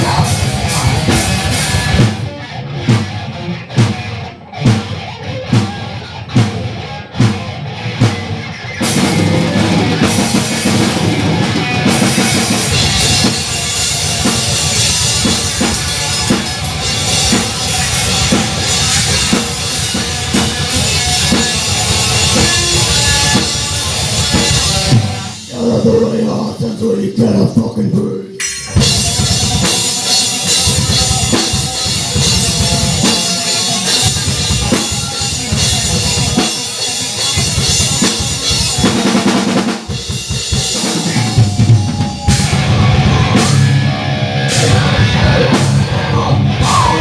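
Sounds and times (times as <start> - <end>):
distorted electric guitar: 0.0 - 47.0
drum kit: 0.0 - 47.0.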